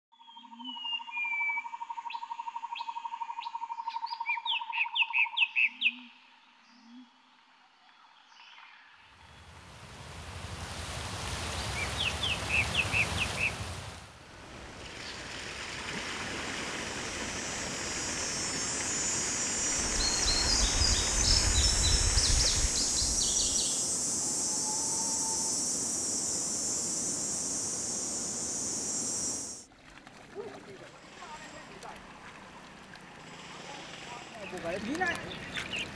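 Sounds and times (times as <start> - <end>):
steady rushing noise: 9.2 - 29.6
high steady hiss: 9.2 - 29.7
birds chirping and calling: 34.2 - 35.9.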